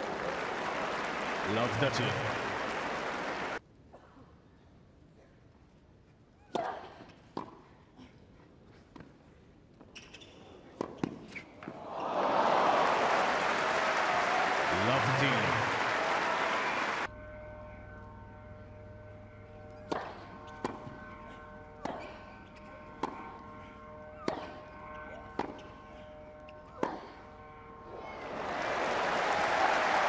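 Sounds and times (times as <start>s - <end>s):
crowd applause: 0.0s - 3.6s, 11.8s - 17.1s, 27.9s - 30.0s.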